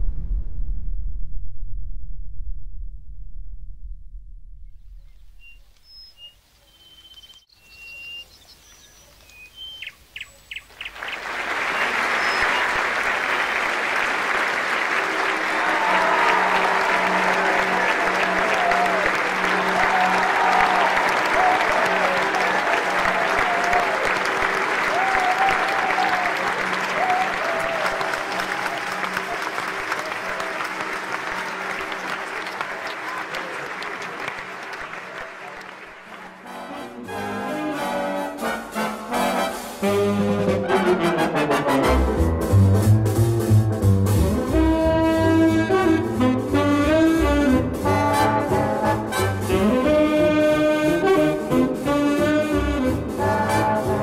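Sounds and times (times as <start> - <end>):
crowd cheering and applauding: 10.8 - 37.1
people shouting: 15.6 - 24.0.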